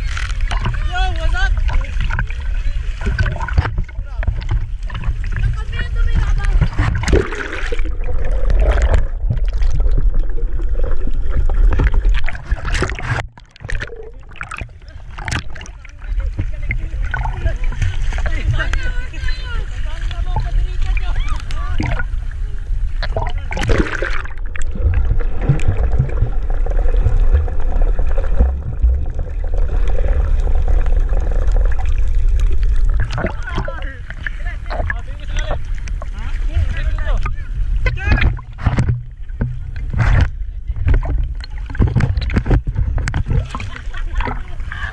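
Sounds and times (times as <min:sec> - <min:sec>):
low rumble of water and wind: 0:00.0 - 0:44.9
water splashing around swimmers: 0:00.0 - 0:44.9
people's voices: 0:14.1 - 0:22.6.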